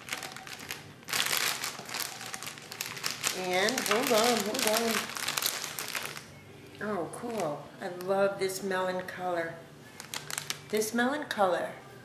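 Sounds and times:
packaging rustling and crinkling: 0.0 - 6.3, 7.2 - 7.6, 9.9 - 11.0.

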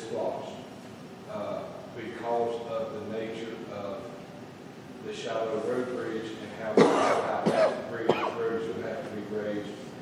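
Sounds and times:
person coughing: 6.8 - 8.4.

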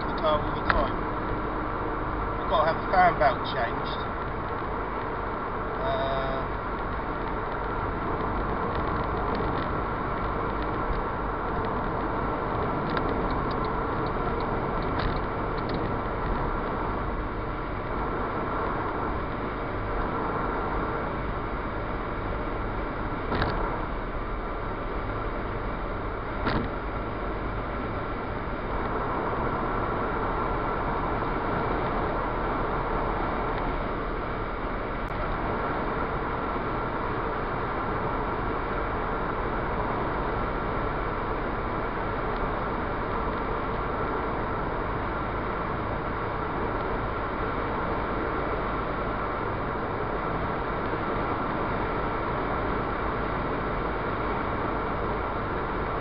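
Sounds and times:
car engine and tyre drone: 0.0 - 56.0.

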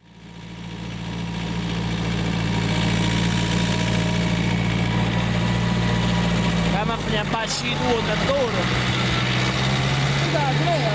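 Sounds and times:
vehicle engine running: 0.0 - 10.9.

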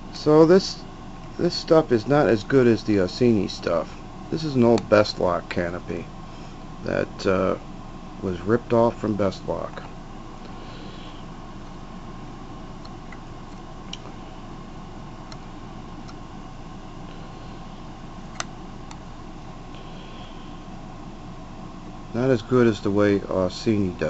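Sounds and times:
steady background hum: 0.0 - 24.0.

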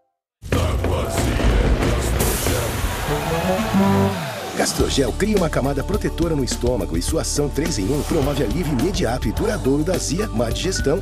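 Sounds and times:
announcer speaking: 3.1 - 5.2.

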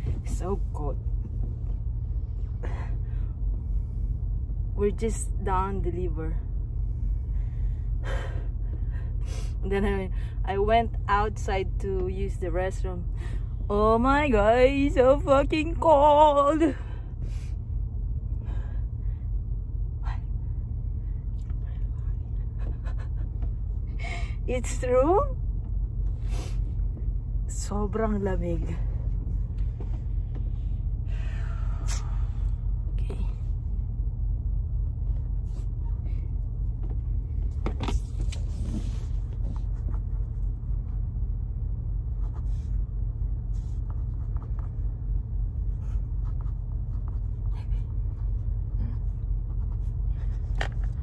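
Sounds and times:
low rumble inside truck cab: 0.0 - 51.0.

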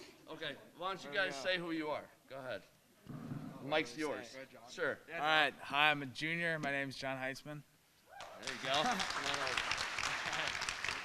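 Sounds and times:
audience applauding: 8.2 - 11.0.

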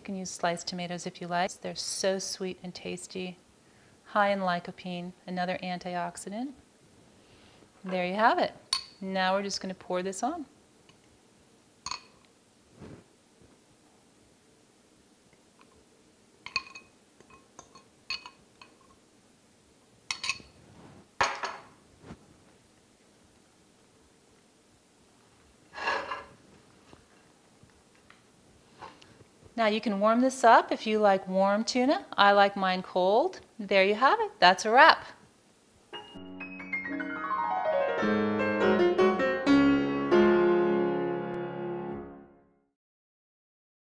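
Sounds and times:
fork clinking on glass bowl: 11.9 - 12.2
piano jingle: 36.0 - 42.4.

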